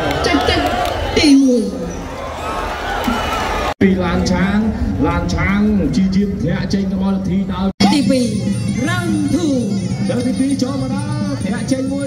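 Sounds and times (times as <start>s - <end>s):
crowd hubbub: 0.0s - 3.8s
commentary: 3.8s - 12.0s
man's voice: 3.8s - 12.0s.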